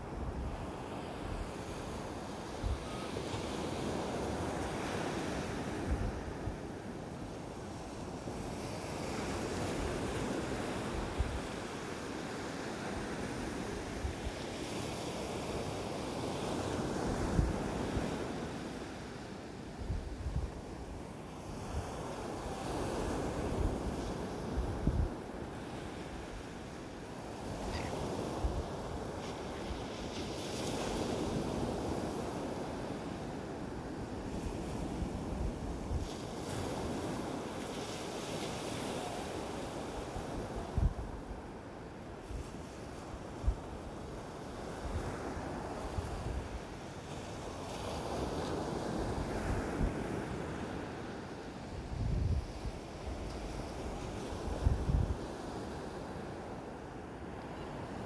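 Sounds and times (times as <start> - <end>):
wind buffeting microphone: 51.9 - 53.6.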